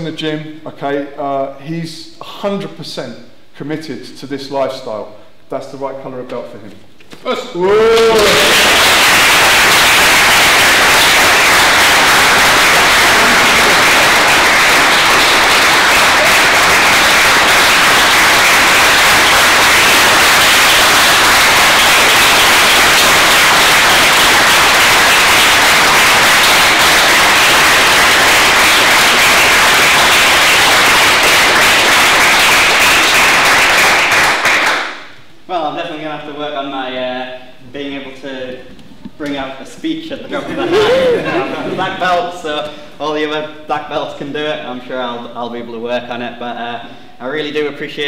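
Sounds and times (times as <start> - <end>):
crowd applauding: 7.6 - 35.1, 40.4 - 42.0.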